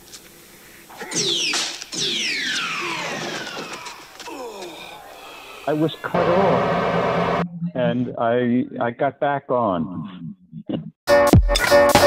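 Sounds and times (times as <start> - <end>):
steady hiss: 0.0 - 1.9
sampled spoken voice: 5.0 - 6.8, 7.5 - 10.9.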